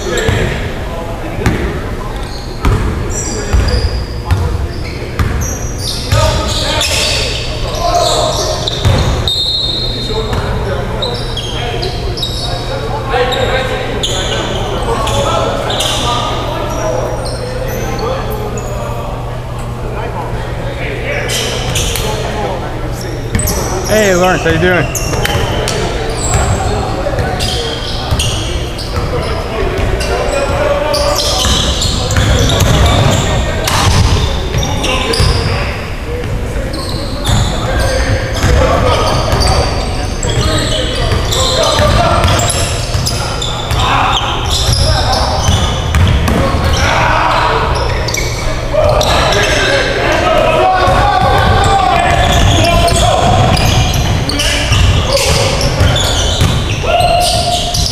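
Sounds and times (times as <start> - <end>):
basketball bouncing: 2.6 - 3.7, 4.3 - 4.6, 5.2 - 5.4, 31.4 - 35.4, 45.4 - 46.8, 50.9 - 56.6
shoes squeaking on gym floor: 23.0 - 35.8, 36.7 - 49.8, 52.1 - 57.9.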